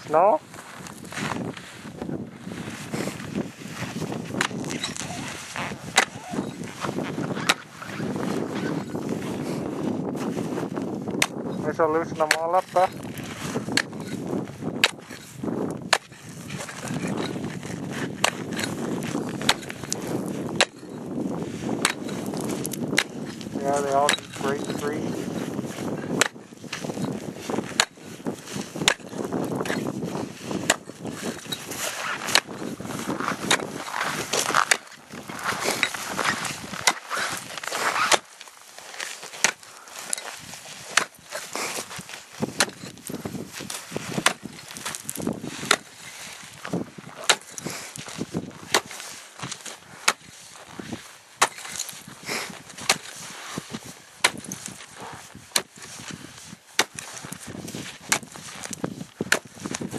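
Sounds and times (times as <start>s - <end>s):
ice bar striking ice: 27.8s - 28.0s, 34.3s - 38.3s, 38.9s - 40.2s, 40.9s - 41.9s, 44.2s - 46.0s, 47.2s - 48.1s, 51.4s - 51.9s, 54.2s - 54.8s, 56.8s - 57.1s.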